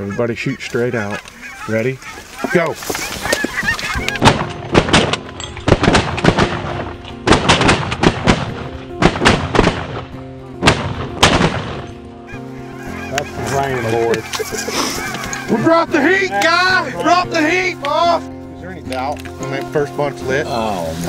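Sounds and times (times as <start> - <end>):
geese honking: 0.0 - 5.2, 11.4 - 18.4
shotgun blasts: 4.2 - 11.9.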